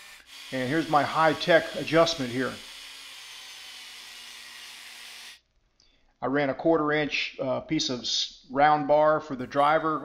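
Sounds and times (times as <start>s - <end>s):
electric drill motor running: 0.0s - 5.4s.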